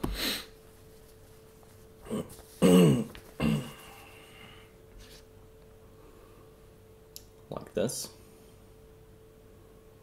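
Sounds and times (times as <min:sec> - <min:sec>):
man clearing his throat: 0:02.0 - 0:03.8.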